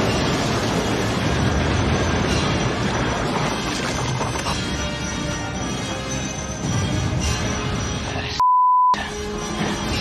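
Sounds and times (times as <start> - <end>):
film score music: 0.0 - 8.4, 9.0 - 10.0
censor bleep: 8.4 - 9.0.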